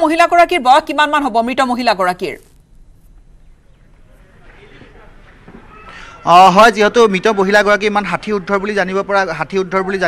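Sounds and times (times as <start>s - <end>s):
outdoor ambience: 0.0s - 10.0s
faint background voices: 3.6s - 6.4s.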